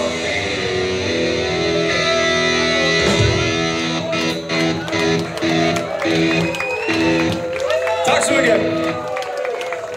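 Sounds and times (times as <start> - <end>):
live rock band: 0.0 - 9.2.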